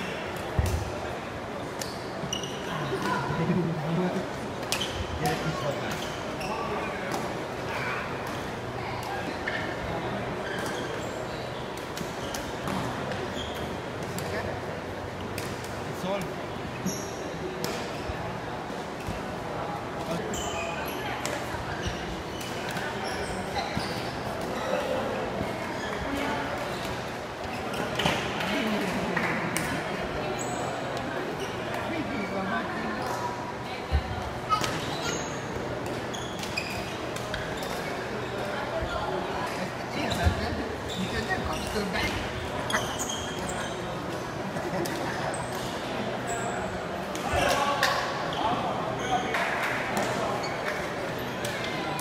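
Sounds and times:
voices in large hall: 0:00.0 - 0:52.0
short high squeaks: 0:42.6 - 0:43.9.

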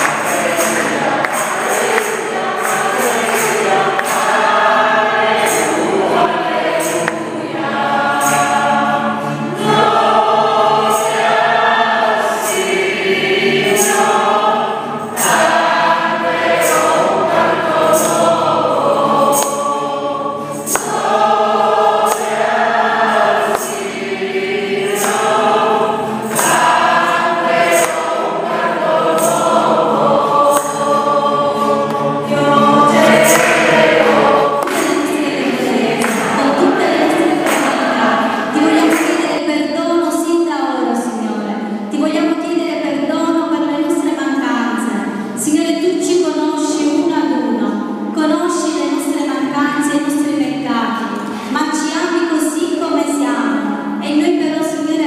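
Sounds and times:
percussion beat: 0:00.0 - 0:39.4
congregation singing: 0:00.0 - 0:55.0.

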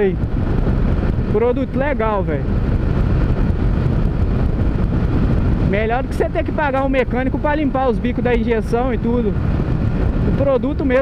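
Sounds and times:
motorcycle engine cruising: 0:00.0 - 0:11.0
wind rush on microphone: 0:00.0 - 0:11.0.

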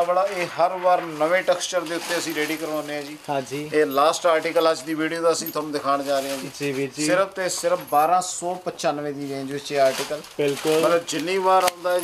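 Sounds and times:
person speaking: 0:00.0 - 0:12.0
cloth rustling: 0:00.2 - 0:12.0.

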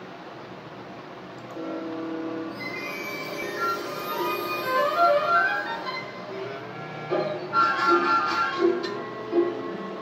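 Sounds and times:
cartoon subway train rumble: 0:00.0 - 0:10.0
sustained tones: 0:01.6 - 0:10.0.

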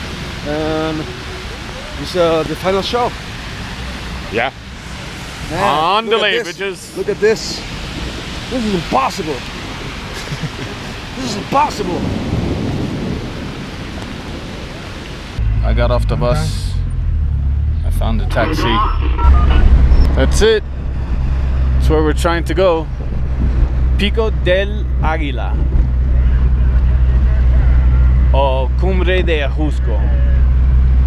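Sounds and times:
heavy rain pouring: 0:00.0 - 0:17.5, 0:18.3 - 0:31.0
low rumble: 0:15.3 - 0:31.0.

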